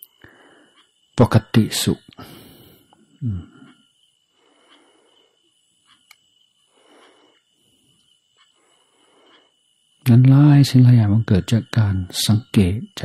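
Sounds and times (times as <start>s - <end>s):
faint ticks: 0.0s - 1.1s, 2.8s - 9.6s.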